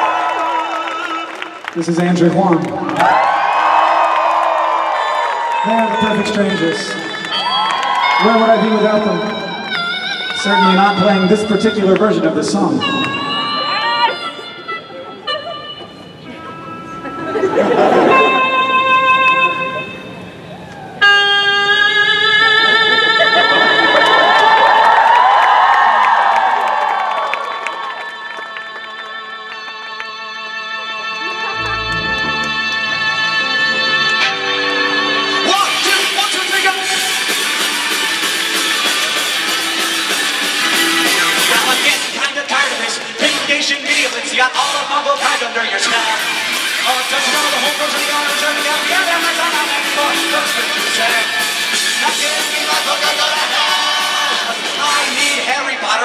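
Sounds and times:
audience cheering and shouting: 0.0s - 12.0s, 12.8s - 14.6s, 22.6s - 28.2s, 35.3s - 56.0s
electronic keyboard sustained notes: 5.6s - 24.4s, 30.4s - 42.0s
bass guitar: 31.3s - 36.2s
electric guitars: 31.3s - 42.2s
drum kit: 35.5s - 55.5s.

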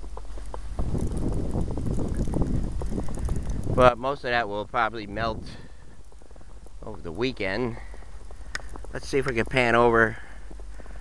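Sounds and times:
footsteps crunching in snow: 0.0s - 11.0s
rustling: 0.0s - 11.0s.

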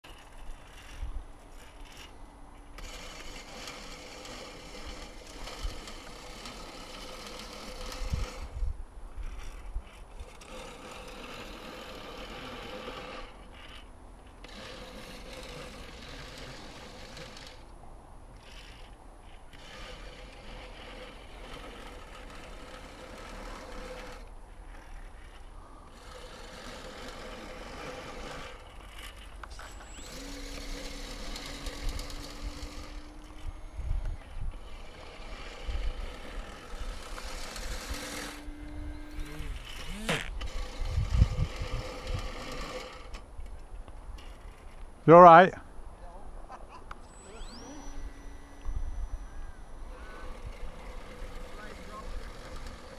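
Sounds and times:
small electric motor whining: 0.0s - 17.8s, 18.4s - 45.7s, 46.8s - 52.9s
wind rumble on microphone: 8.0s - 10.3s, 31.8s - 34.8s, 38.5s - 42.3s.

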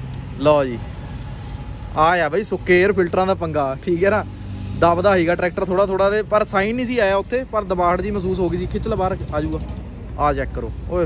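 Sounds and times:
low engine hum: 0.0s - 11.0s.

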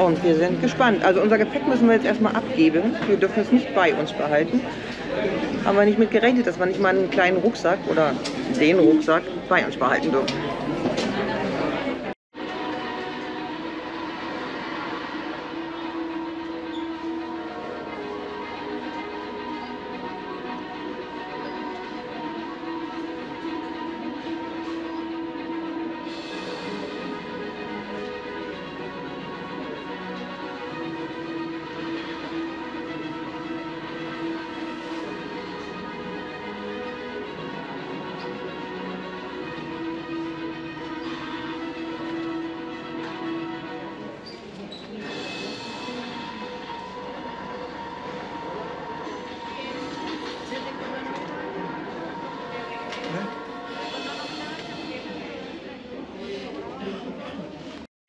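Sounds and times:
music with long held notes: 0.0s - 56.2s.

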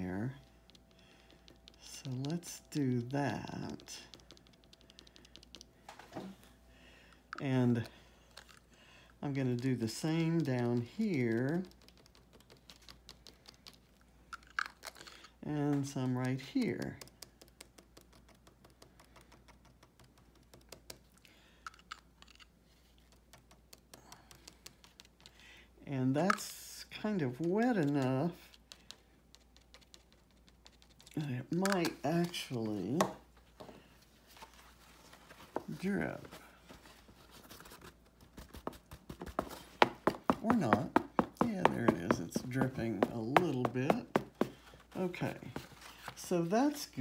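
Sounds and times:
cardstock page taps and clicks: 3.7s - 5.8s, 37.4s - 46.2s
soft rustles: 27.4s - 47.0s.

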